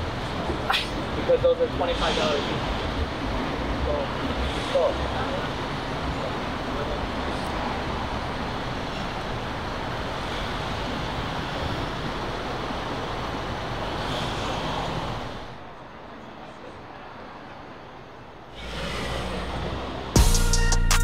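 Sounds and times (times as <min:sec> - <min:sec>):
cars passing close by: 0:18.0 - 0:20.3.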